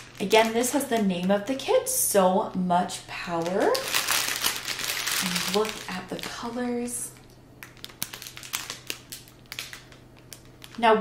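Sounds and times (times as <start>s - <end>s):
plastic shrink wrap crinkling: 0.0s - 1.9s, 3.1s - 11.0s.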